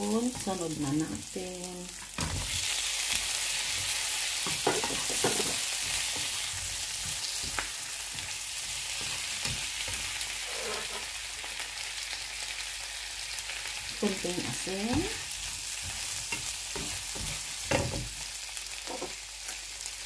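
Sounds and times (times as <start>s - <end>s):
shrimp sizzling in a frying pan: 0.0s - 20.0s.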